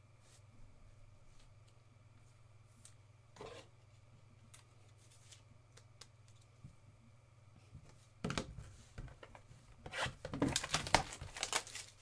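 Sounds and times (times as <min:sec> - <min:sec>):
steady low hum: 0:00.0 - 0:10.2
trading cards rustling: 0:10.4 - 0:12.0.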